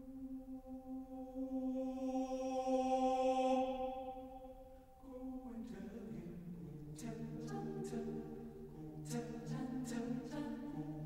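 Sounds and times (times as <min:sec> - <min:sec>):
a cappella choir holding a note: 0:00.0 - 0:11.0.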